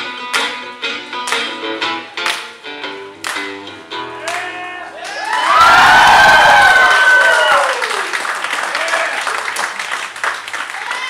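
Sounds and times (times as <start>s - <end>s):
audience clapping and cheering: 4.2s - 11.0s
long whoop: 4.9s - 8.2s.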